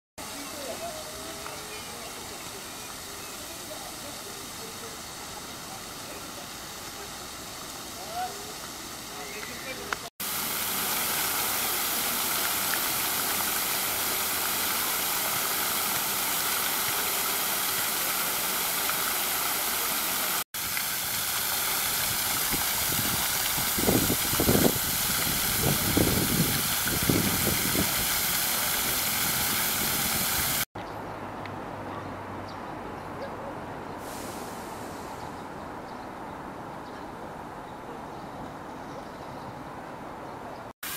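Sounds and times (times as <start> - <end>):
fountain water splashing: 0.2 - 30.7.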